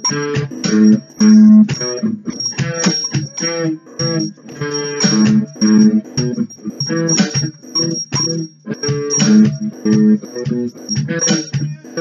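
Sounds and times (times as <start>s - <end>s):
electric guitar strumming chords: 0.0s - 12.0s.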